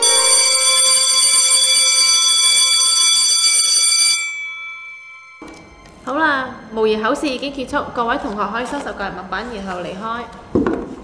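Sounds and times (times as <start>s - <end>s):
electric bell ringing: 0.0s - 7.3s.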